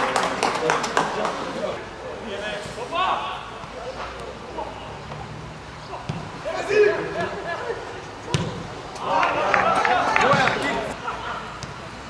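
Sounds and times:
players calling out: 0:02.6 - 0:12.0
football kick thud: 0:08.3 - 0:08.6.

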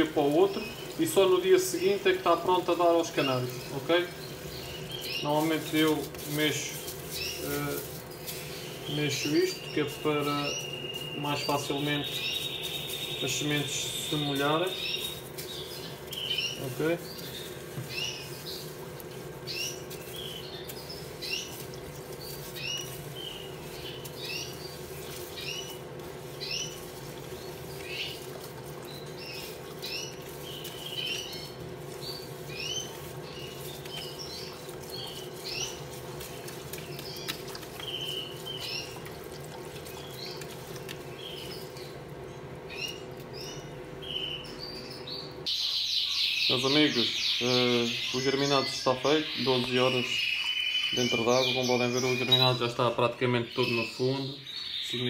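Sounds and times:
steady low hum: 0:00.0 - 0:45.5
canaries chirping: 0:00.0 - 0:55.0.

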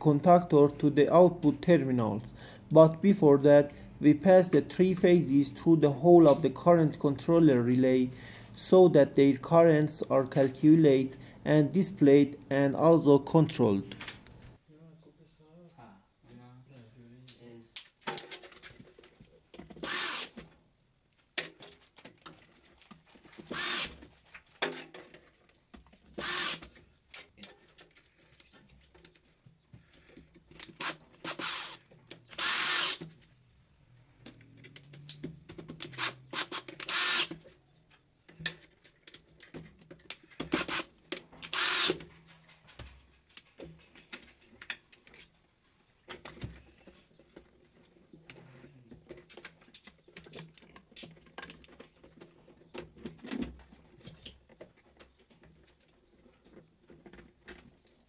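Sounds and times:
cordless screwdriver whirring: 0:19.8 - 0:20.4, 0:23.5 - 0:24.0, 0:26.2 - 0:26.6, 0:30.8 - 0:33.0, 0:35.9 - 0:37.4, 0:41.5 - 0:42.0.

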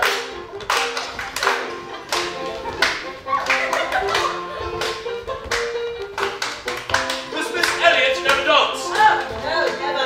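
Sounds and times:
hands clapping: 0:00.0 - 0:09.9
lively piano dance tune: 0:00.0 - 0:10.0.

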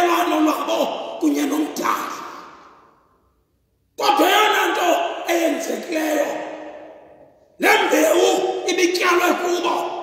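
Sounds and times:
man preaching: 0:00.0 - 0:03.0, 0:03.9 - 0:10.0.

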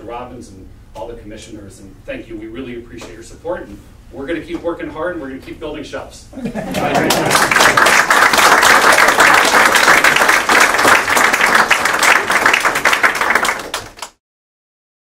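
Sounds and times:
audience laughter: 0:06.4 - 0:07.9
audience applauding: 0:06.7 - 0:14.2.

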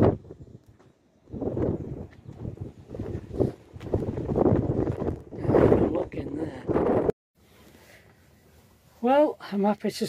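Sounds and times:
wind buffeting microphone: 0:00.0 - 0:07.2.

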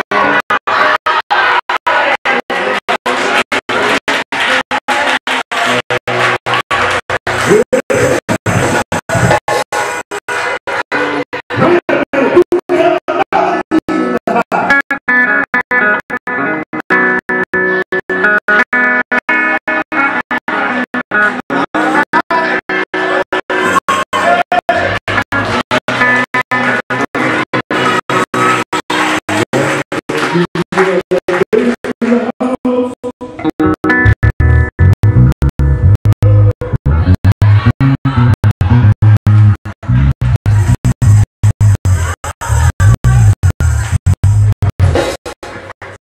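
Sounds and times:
guitar: 0:00.0 - 0:46.0
heavy bass line: 0:00.0 - 0:46.0
organ chords: 0:24.9 - 0:45.1.

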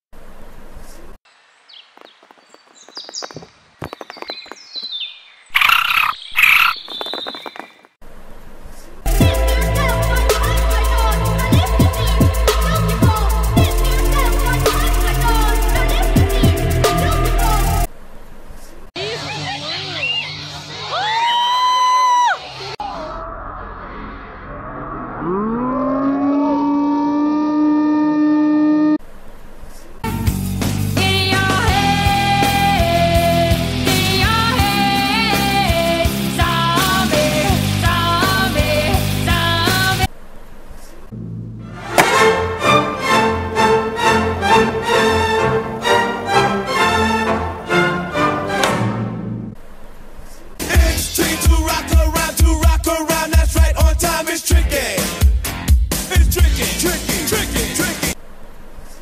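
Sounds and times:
creature chirping: 0:03.3 - 0:07.9, 0:24.4 - 0:29.0
siren-like wail: 0:23.0 - 0:29.0.

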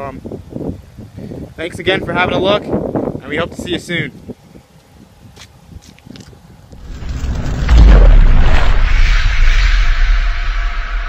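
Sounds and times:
deep boom with low rumble: 0:06.8 - 0:11.0
rising whoosh: 0:06.8 - 0:11.0
hissing swell: 0:06.9 - 0:11.0.

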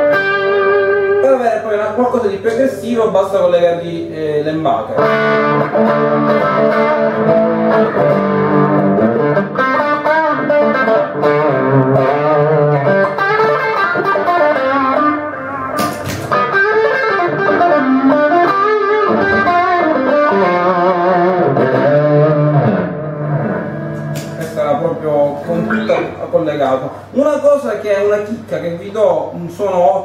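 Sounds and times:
electric guitar with effects: 0:00.0 - 0:02.0, 0:04.8 - 0:26.3.

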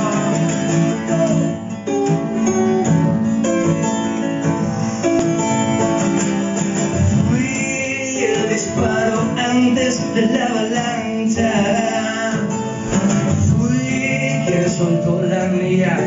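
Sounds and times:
acoustic guitar playing: 0:00.0 - 0:16.0.

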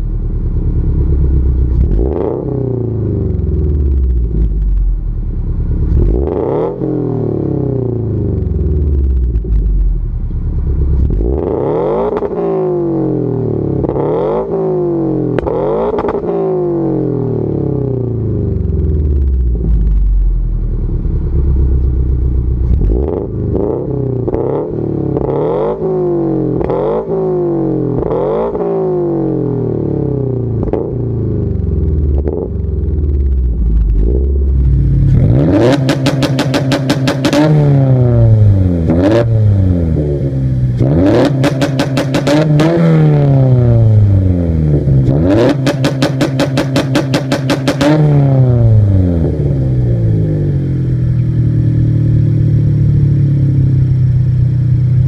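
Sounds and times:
car engine revving: 0:00.0 - 0:54.2
exhaust pops and bangs: 0:35.1 - 0:37.6, 0:41.2 - 0:42.7, 0:45.4 - 0:48.2.

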